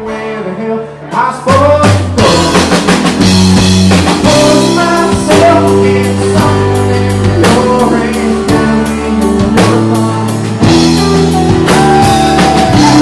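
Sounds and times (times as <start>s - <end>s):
man singing: 0.0s - 3.3s, 4.0s - 13.0s
drum kit beat: 1.1s - 13.0s.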